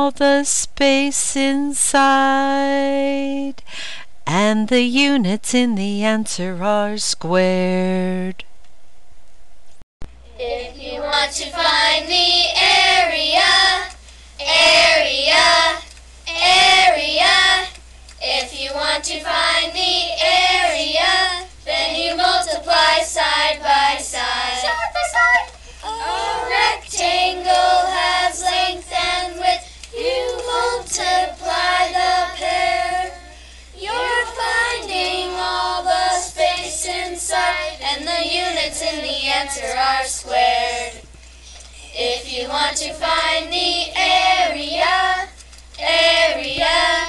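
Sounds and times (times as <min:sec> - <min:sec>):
children singing: 0:19.4 - 0:33.2.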